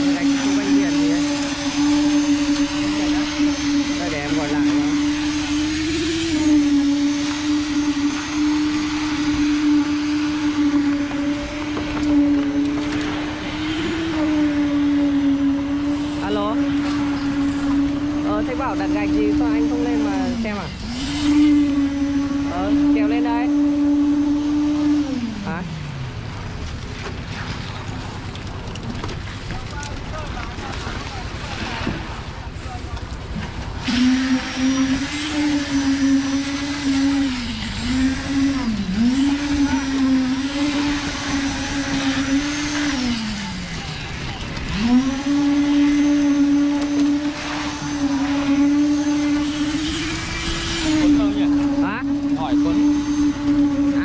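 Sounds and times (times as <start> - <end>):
concrete vibrator humming: 0.0 - 54.0.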